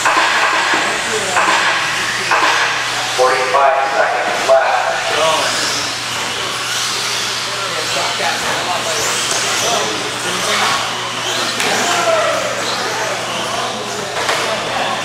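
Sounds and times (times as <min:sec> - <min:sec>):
chatter of many voices: 0:00.0 - 0:15.0.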